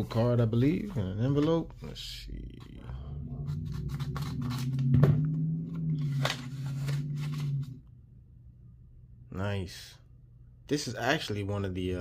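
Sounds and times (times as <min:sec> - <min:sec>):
low steady hum: 0:00.0 - 0:12.0
scissors cutting paper: 0:03.5 - 0:04.8.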